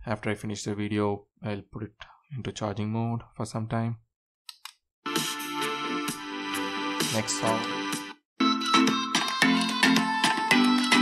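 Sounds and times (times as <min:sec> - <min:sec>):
music with a steady beat: 0:05.1 - 0:11.0.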